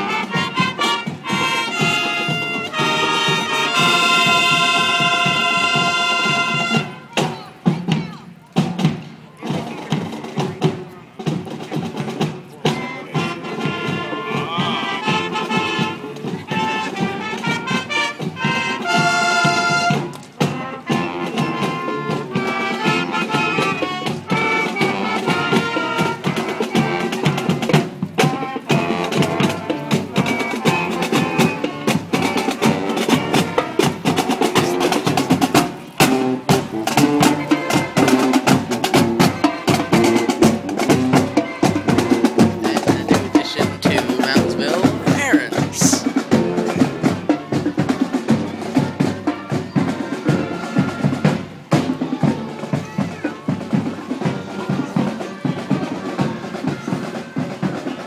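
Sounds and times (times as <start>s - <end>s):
marching band playing: 0.0s - 58.0s.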